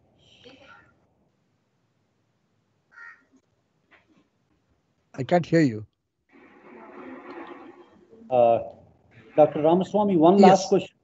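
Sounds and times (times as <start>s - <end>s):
microphone hiss: 6.3s - 11.0s
muffled background sound: 6.4s - 11.0s.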